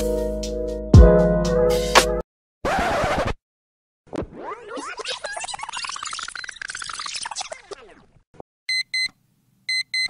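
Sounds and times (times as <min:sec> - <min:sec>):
background music: 0:00.0 - 0:02.2
record scratch noise: 0:02.6 - 0:03.4, 0:04.1 - 0:08.2
chirping electronic sound effect: 0:04.1 - 0:08.1.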